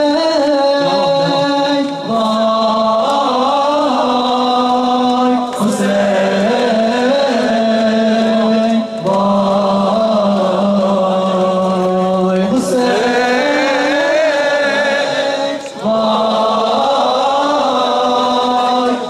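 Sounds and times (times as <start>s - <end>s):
men chanting a lament: 0.0s - 19.0s.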